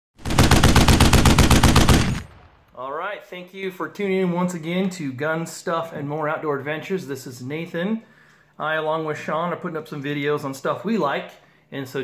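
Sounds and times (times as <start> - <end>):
rapid automatic gunfire: 0.2 - 2.6.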